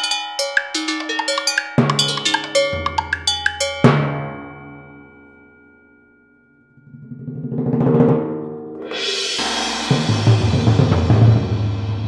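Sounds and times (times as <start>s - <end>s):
tuned cowbells struck: 0.0s - 6.0s.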